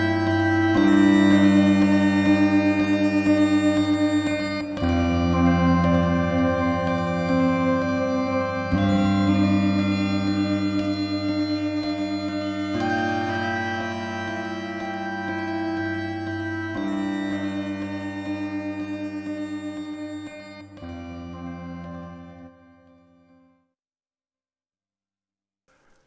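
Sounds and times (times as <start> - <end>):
synthesizer sustained chords: 0.0 - 23.4.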